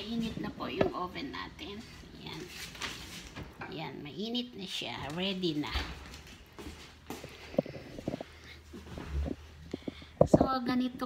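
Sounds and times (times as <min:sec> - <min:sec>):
footsteps: 0:05.6 - 0:10.5.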